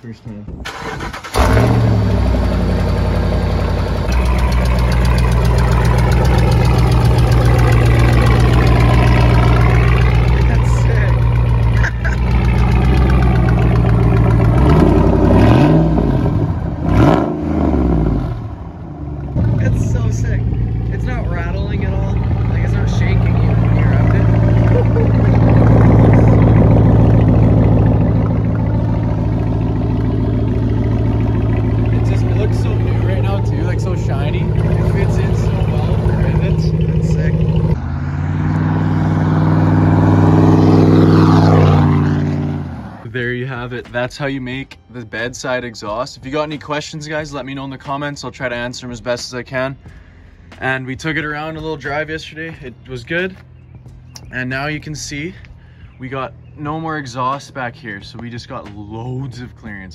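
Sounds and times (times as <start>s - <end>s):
truck engine idling: 0.0s - 16.9s, 18.5s - 44.1s, 45.2s - 59.9s
engine throttle blips: 0.7s - 44.2s.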